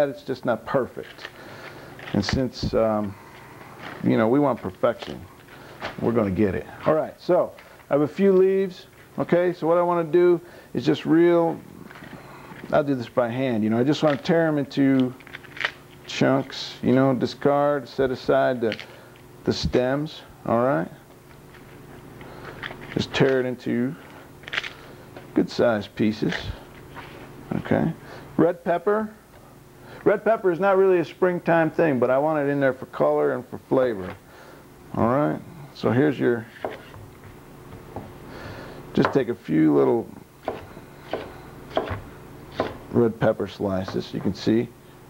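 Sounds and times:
lettuce leaves tearing: 15.0s - 16.2s, 24.4s - 24.9s.

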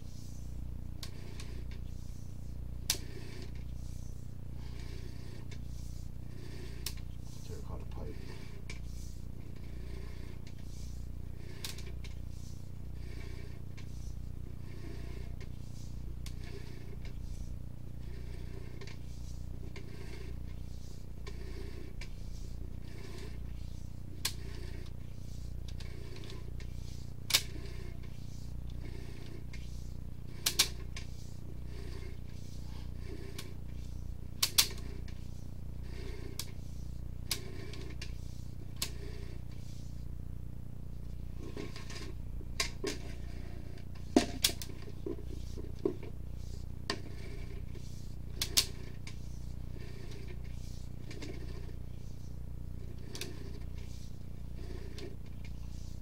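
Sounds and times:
steady electrical hum: 0.0s - 56.0s
cable pulled through pipe: 2.9s - 39.8s, 41.4s - 52.2s, 52.8s - 56.0s.

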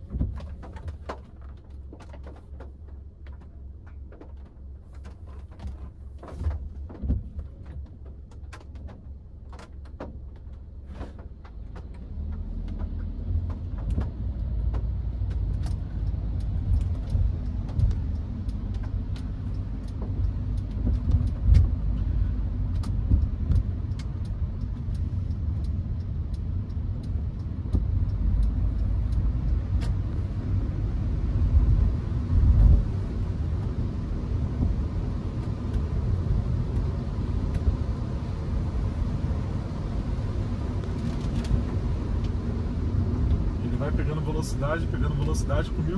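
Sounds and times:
car engine and road rumble: 0.0s - 45.9s.

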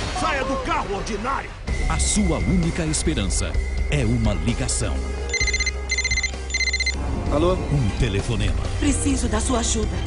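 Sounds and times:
electronic ringtone trills: 5.3s - 7.0s.

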